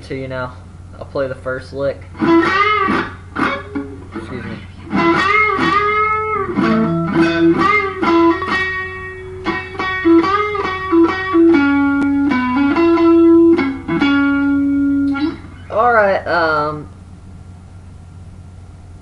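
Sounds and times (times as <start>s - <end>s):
electric guitar country lick: 2.1s - 16.0s.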